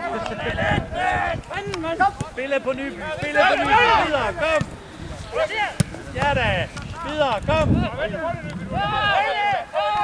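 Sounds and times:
football players shouting: 0.0s - 6.1s, 7.9s - 10.0s.

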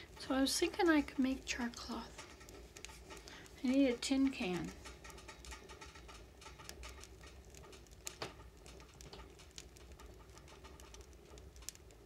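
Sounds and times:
low steady hum: 0.0s - 12.0s
wood fire crackling in stove: 0.0s - 12.0s.

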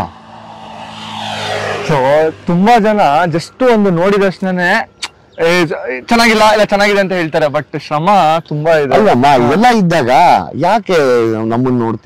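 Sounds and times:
vehicle engine hum: 0.0s - 10.4s
road noise: 0.0s - 12.0s.

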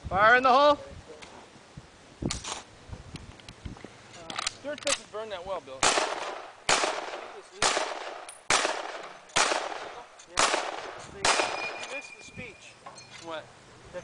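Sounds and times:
rifle shots with echo: 5.8s - 12.0s
high ringing ping of clip ejecting: 11.4s - 13.2s.

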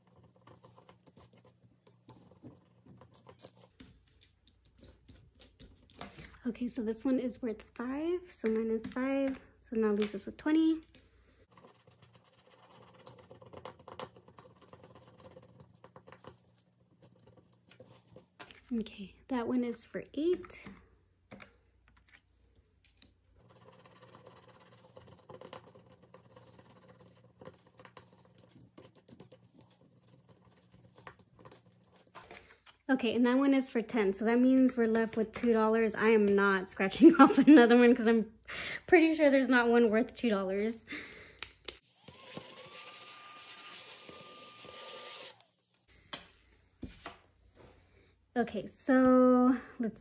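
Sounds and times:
small vacuum motor whine: 41.8s - 46.8s.

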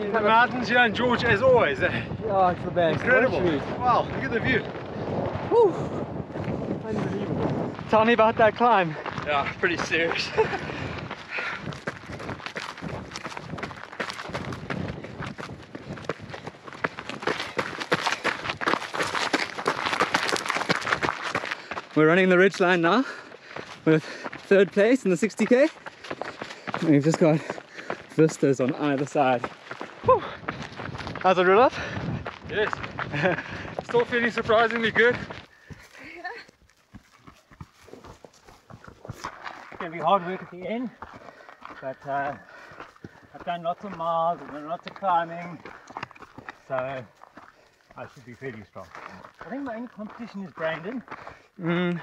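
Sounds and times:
running footsteps on dirt trail: 0.0s - 52.0s.

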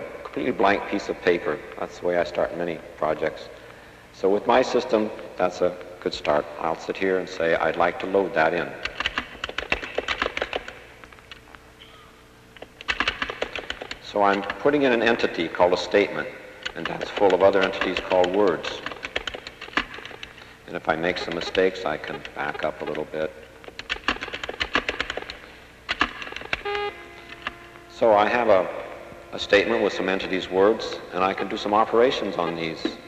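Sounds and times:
computer keyboard typing: 8.8s - 10.8s, 12.7s - 15.3s, 16.6s - 20.4s, 21.0s - 27.6s.

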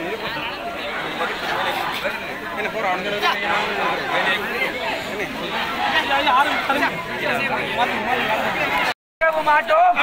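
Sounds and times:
crowd chattering: 0.0s - 10.0s
man speaking loudly: 9.2s - 10.0s.

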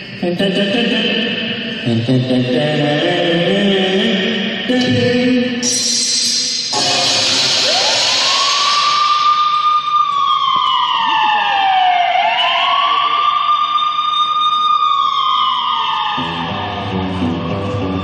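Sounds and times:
loud hiss: 5.6s - 9.4s
siren wails: 6.7s - 18.0s.

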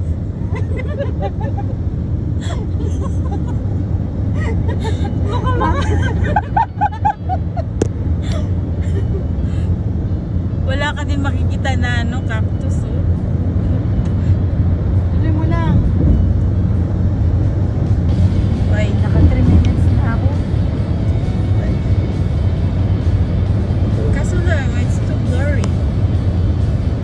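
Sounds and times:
car road and engine rumble: 0.0s - 27.0s
music: 18.1s - 27.0s
voices: 24.0s - 25.7s.

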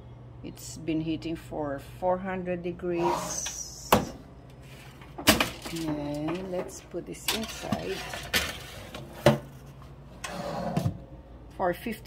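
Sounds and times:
baking tray scraping on rack: 5.7s - 9.5s, 10.1s - 11.0s.

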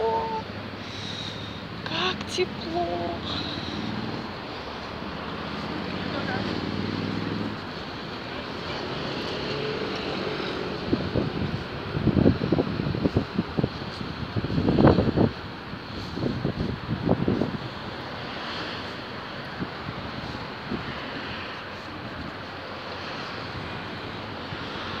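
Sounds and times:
wind buffeting microphone: 10.3s - 18.1s.

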